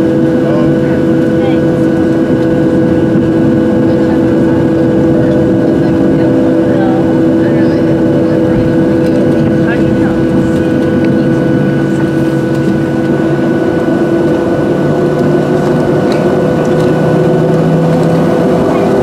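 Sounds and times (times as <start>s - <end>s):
jet engine hum and whine: 0.0s - 19.0s
faint voices: 0.3s - 13.4s, 18.2s - 19.0s.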